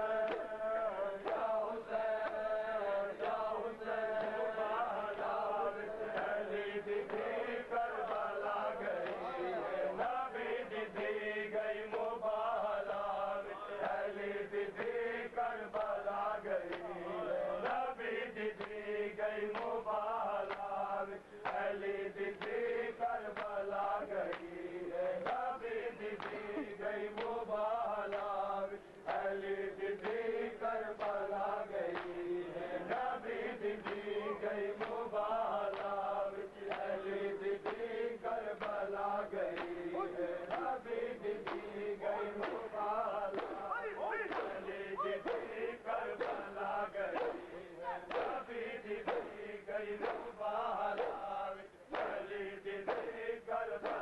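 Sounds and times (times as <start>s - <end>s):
men chanting a lament: 0.0s - 54.0s
hands slapping bare chests: 39.5s - 39.8s, 41.4s - 43.7s, 44.3s - 46.5s, 47.1s - 47.5s, 48.1s - 48.4s, 49.0s - 49.4s, 50.0s - 50.3s, 50.9s - 51.2s, 51.9s - 53.2s, 53.8s - 54.0s.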